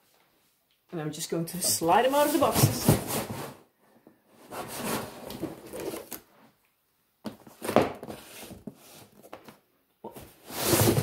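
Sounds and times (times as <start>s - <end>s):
cardboard boxes scraping cardboard: 1.6s - 3.7s, 4.4s - 6.2s, 7.5s - 9.2s, 10.3s - 11.0s.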